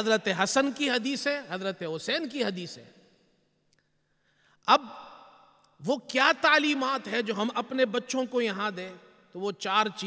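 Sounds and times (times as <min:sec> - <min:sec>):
man speaking: 0:00.0 - 0:02.9, 0:05.8 - 0:10.0.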